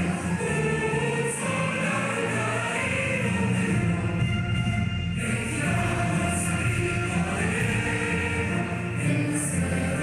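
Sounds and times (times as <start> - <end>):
group singing an anthem: 0.0 - 10.0.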